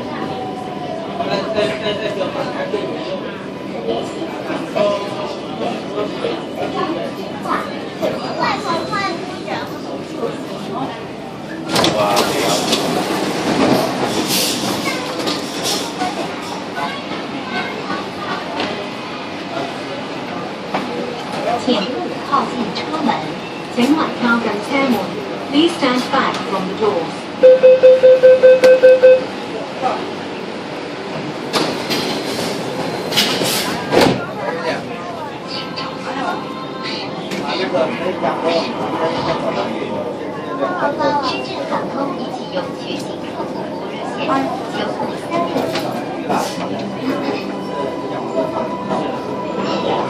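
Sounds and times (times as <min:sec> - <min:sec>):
passenger voices: 0:00.0 - 0:50.0
train car running hum: 0:00.0 - 0:50.0
train door warning beeps: 0:27.4 - 0:29.3.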